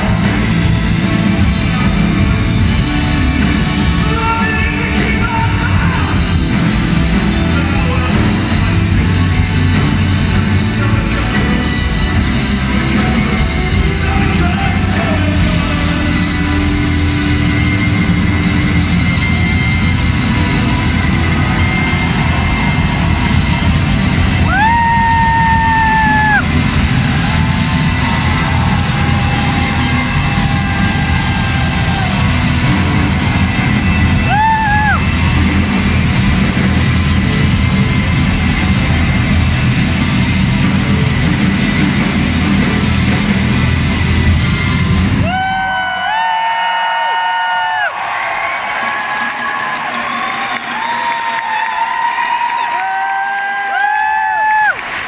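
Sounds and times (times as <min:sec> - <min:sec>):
rock band with string orchestra: 0:00.0 - 0:55.0.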